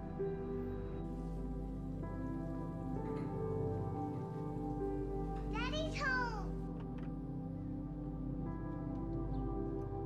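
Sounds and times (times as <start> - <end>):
soft background music: 0.0 - 10.0
girl calling out: 5.6 - 6.6.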